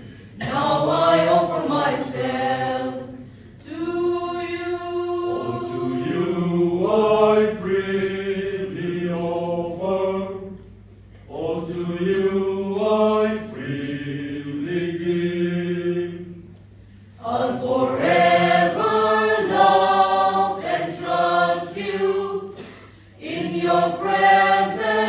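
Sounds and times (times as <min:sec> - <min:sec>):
choir singing a hymn: 0:00.0 - 0:16.5, 0:17.1 - 0:25.0.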